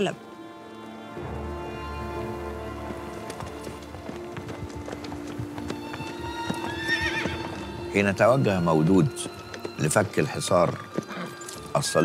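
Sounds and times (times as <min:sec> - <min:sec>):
sustained tone music score: 0:00.0 - 0:12.0
horse hooves clip-clopping: 0:01.2 - 0:12.0
horse whinnying: 0:06.1 - 0:08.0, 0:10.3 - 0:11.8.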